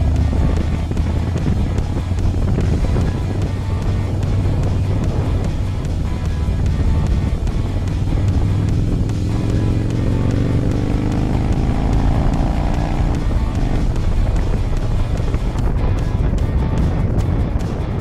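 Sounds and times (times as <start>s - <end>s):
motorcycle engine running: 0.0s - 18.0s
music playing: 0.0s - 18.0s.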